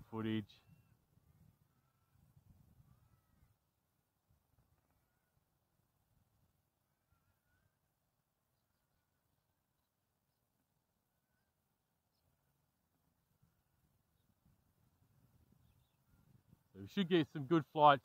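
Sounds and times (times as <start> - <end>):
distant bird chirps: 0.0 - 17.8
faint low wind rumble: 0.0 - 18.0.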